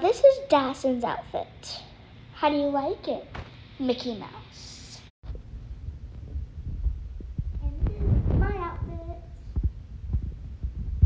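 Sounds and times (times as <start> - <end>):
child's voice: 0.0 - 5.0, 7.6 - 9.4
soft low thumps: 5.3 - 11.0.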